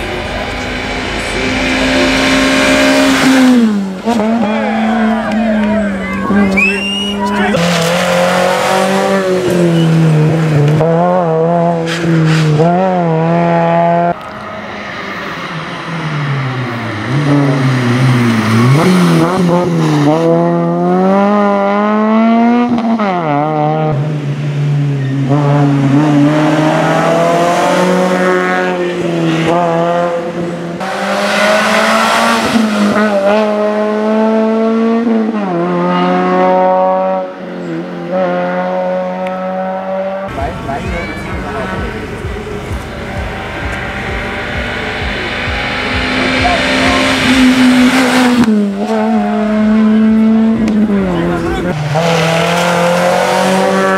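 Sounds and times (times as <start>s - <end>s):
rally car engines at full throttle: 0.0s - 53.9s.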